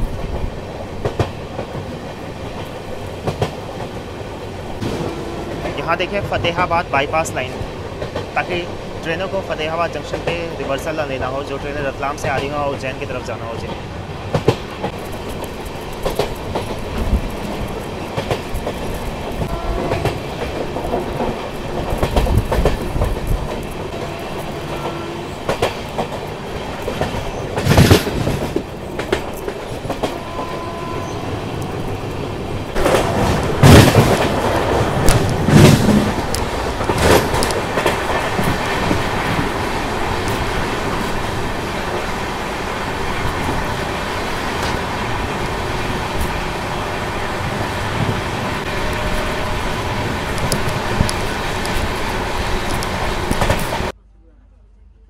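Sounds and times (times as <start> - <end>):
train wheels rumbling on track: 0.0 - 54.0.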